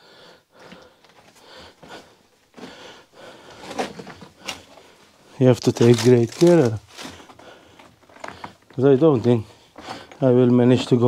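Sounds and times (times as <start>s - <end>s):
person breathing: 0.0s - 5.4s, 6.9s - 8.7s, 9.4s - 10.2s
shuffling over loose rubble: 0.6s - 11.0s.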